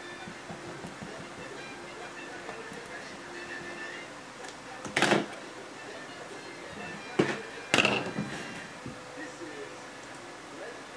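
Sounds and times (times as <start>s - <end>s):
faint background music: 0.0s - 10.9s.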